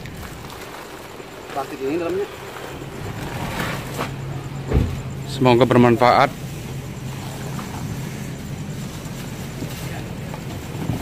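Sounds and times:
steady low hum: 0:00.0 - 0:11.0
plastic sacks rustling: 0:06.4 - 0:11.0.

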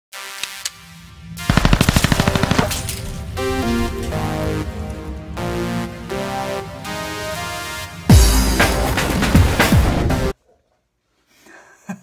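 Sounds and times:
stepping synth melody: 0:00.2 - 0:10.3
title-sequence music: 0:00.2 - 0:10.3
machine-gun fire sound effect: 0:01.4 - 0:03.6.

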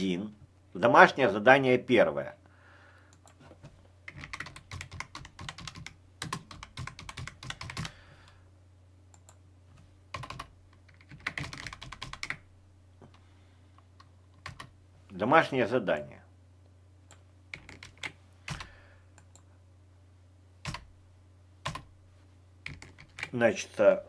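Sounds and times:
computer keyboard typing: 0:04.1 - 0:08.0, 0:10.1 - 0:12.4, 0:14.0 - 0:14.7, 0:17.1 - 0:19.4, 0:20.6 - 0:20.9, 0:21.6 - 0:21.9, 0:22.6 - 0:23.3.

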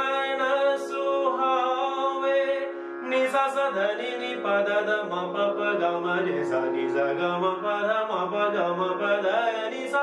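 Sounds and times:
harmonium holding steady notes: 0:00.0 - 0:10.0
man singing ornamented melody: 0:00.0 - 0:10.0.

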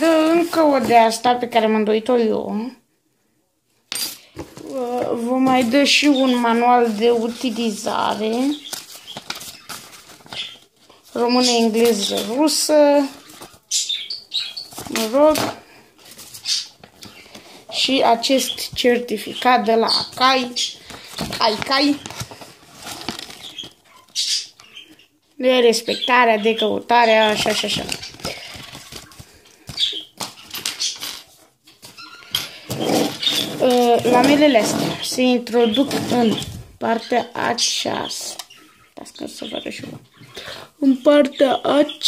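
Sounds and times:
paper pages rustling: 0:00.0 - 0:01.2, 0:04.4 - 0:25.0, 0:26.9 - 0:36.8.

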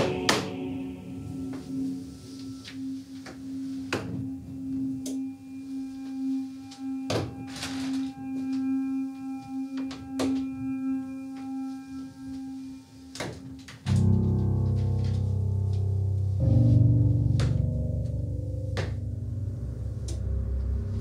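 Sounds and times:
faint high tones: 0:00.0 - 0:14.1
eerie low drone: 0:00.0 - 0:21.0.

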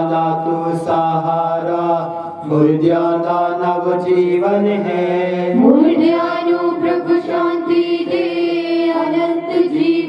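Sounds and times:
man chanting into a microphone: 0:00.0 - 0:06.2.

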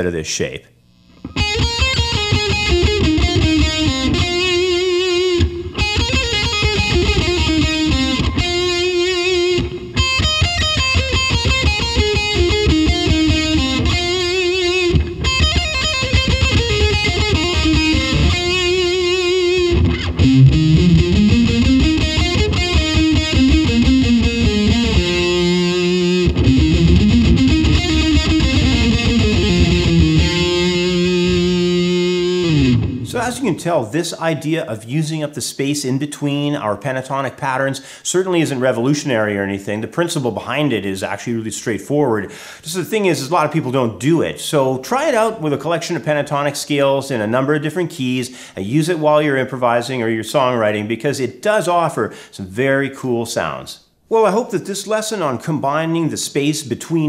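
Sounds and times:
overdriven electric guitar licks: 0:01.0 - 0:33.6.

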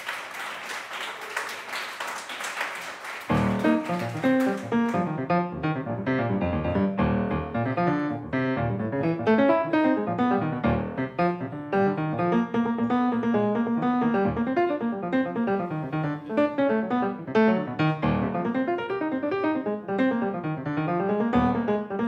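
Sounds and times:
jazz piano playing: 0:03.3 - 0:22.0.

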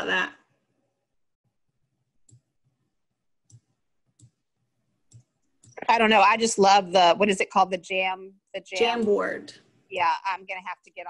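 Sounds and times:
computer mouse clicking: 0:02.2 - 0:02.8, 0:03.4 - 0:04.4, 0:05.1 - 0:06.0
person speaking: 0:05.7 - 0:11.0.

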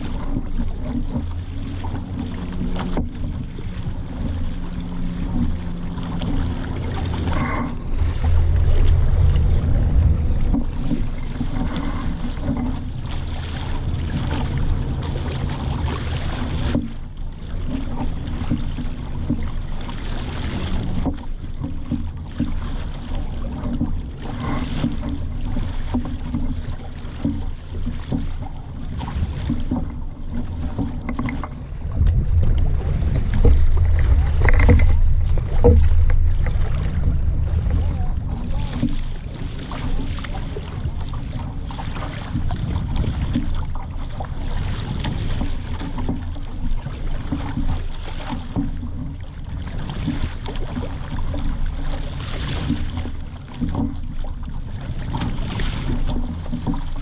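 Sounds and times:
wind buffeting microphone: 0:00.0 - 0:17.0, 0:28.7 - 0:51.4
water washing along hull: 0:00.0 - 0:57.0.

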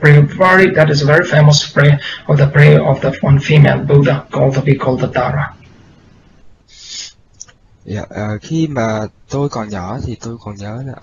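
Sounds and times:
man speaking: 0:06.8 - 0:07.1, 0:07.9 - 0:11.0.

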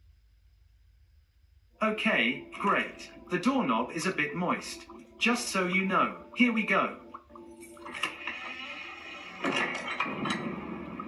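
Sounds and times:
game music from small speaker: 0:01.8 - 0:11.0.

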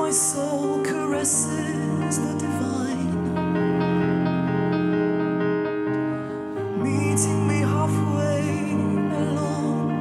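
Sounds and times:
cello playing: 0:00.0 - 0:10.0
keyboard playing chords: 0:00.0 - 0:10.0.

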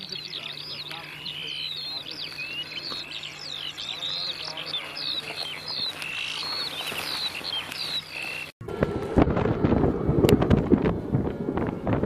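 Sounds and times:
birds chirping and singing: 0:00.0 - 0:08.6
wind buffeting microphone: 0:01.3 - 0:12.0.

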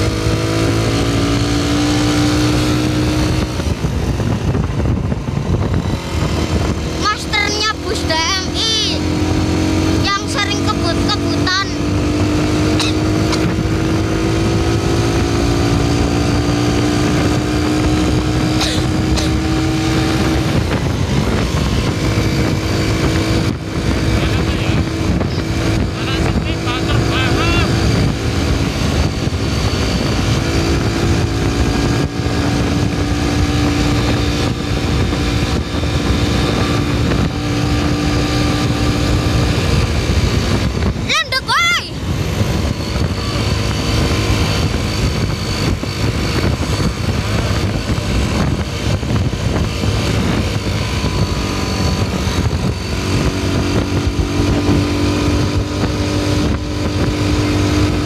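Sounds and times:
road and wind noise: 0:00.0 - 0:58.0
vehicle engine running: 0:00.0 - 0:58.0.

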